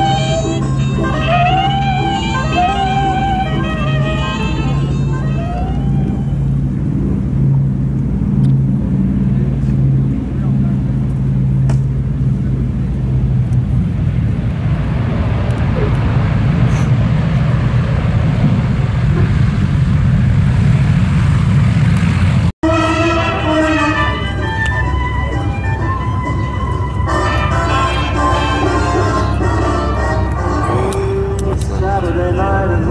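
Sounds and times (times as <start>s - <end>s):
aircraft piston engines droning: 0.0s - 32.9s
rough rushing noise of wheels on runway: 0.0s - 32.9s.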